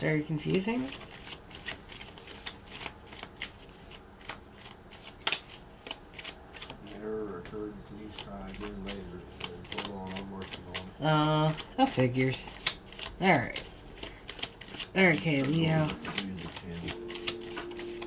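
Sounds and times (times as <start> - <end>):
cards being shuffled: 0.4 - 7.4, 8.0 - 18.0.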